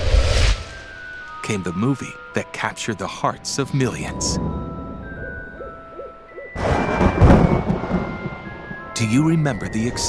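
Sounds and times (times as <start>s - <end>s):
owl hooting: 5.2s - 6.6s
loud thunder-like rumble: 6.6s - 9.0s.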